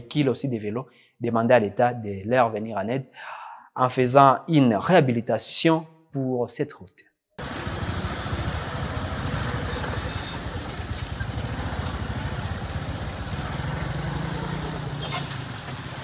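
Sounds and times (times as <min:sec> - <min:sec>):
small motorcycle engine running: 0:07.4 - 0:16.0
traffic: 0:07.4 - 0:16.0.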